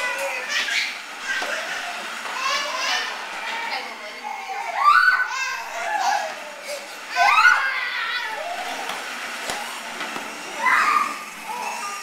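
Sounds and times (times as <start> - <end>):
young children chattering and crying: 0.0 - 9.0, 10.3 - 12.0.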